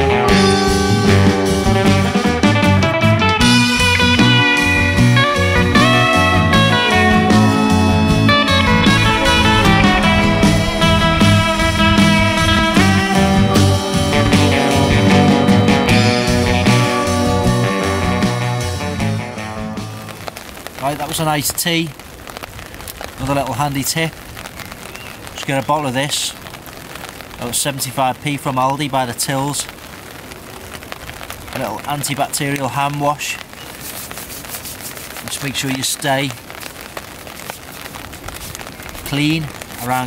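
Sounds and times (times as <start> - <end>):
rock music with guitar: 0.0 - 20.4
rain falling on a tarp: 0.0 - 40.0.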